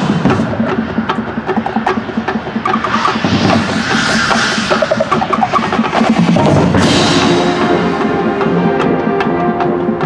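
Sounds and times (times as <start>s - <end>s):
marching band drums: 0.0s - 10.0s.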